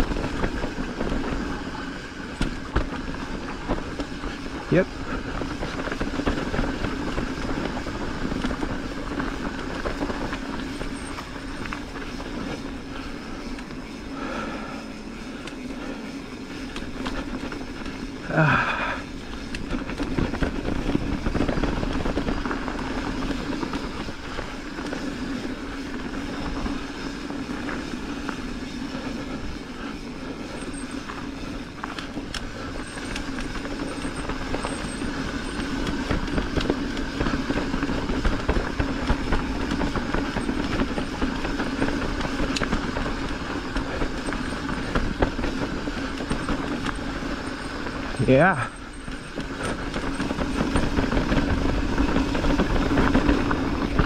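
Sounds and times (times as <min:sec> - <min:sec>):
bike rattling over bumps: 0:00.0 - 0:54.0
bike tyres rumbling on dirt: 0:00.0 - 0:54.0.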